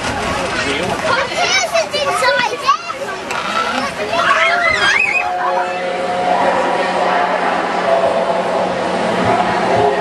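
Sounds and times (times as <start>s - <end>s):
children talking and calling out: 0.4s - 10.0s.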